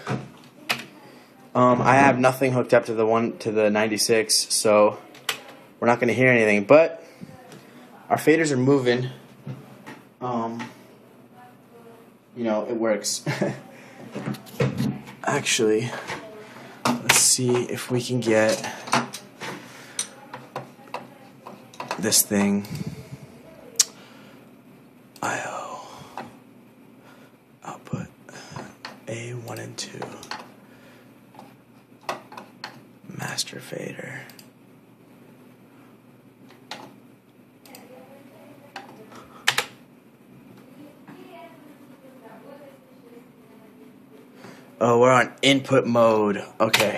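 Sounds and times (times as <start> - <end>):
faint steady hum: 0.0 - 46.9.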